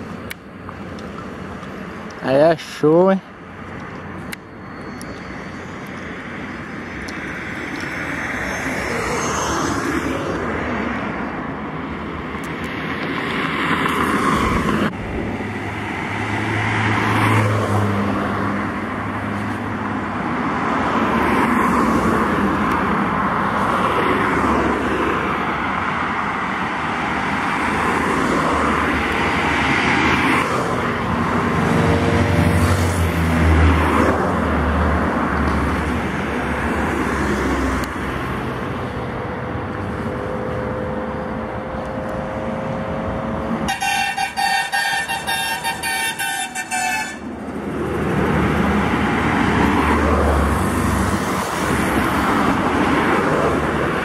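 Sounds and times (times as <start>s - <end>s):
highway traffic passing: 0.0s - 54.0s.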